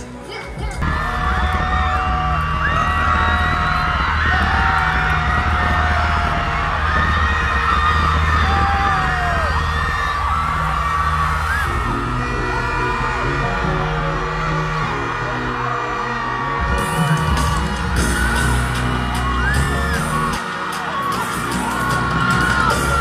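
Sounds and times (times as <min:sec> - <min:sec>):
live concert music: 0:00.0 - 0:23.0
deep bass pulse: 0:00.8 - 0:20.3
crowd screaming and whooping: 0:00.8 - 0:23.0.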